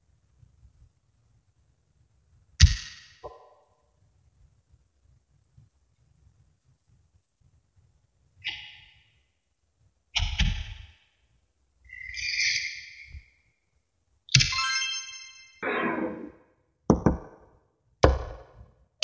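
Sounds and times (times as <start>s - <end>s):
held high tone: 14.5s - 16.0s.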